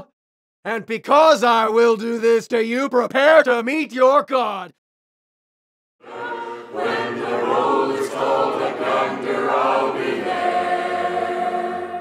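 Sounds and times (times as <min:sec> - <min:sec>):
congregation singing a hymn: 0:06.0 - 0:12.0.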